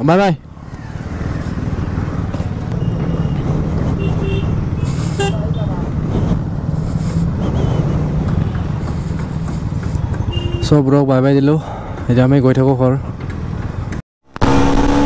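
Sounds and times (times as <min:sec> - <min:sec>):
short horn beeps: 0:10.3 - 0:10.7.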